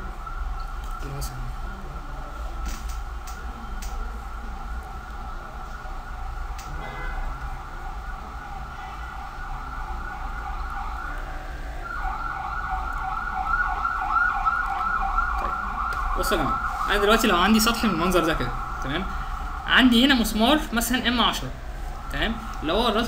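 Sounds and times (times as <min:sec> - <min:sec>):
siren-like warbling tone: 0:00.0 - 0:23.0.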